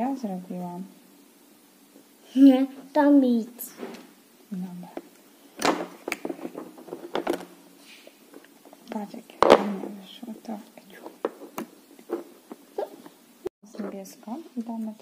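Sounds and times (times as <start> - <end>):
plastic toy parts knocking: 5.6 - 7.5.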